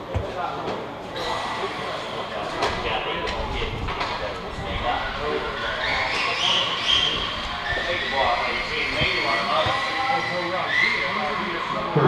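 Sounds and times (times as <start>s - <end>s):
indistinct voices talking: 1.0s - 12.0s.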